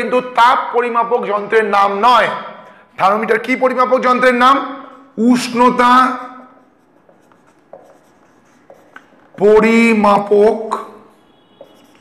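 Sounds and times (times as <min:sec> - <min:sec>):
man talking: 0:00.0 - 0:06.6, 0:09.4 - 0:11.1
marker pen on whiteboard: 0:01.8 - 0:12.0.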